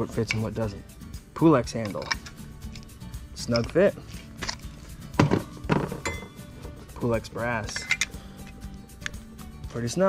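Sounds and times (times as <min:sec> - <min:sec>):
squeegee handles clinking: 0:00.0 - 0:10.0.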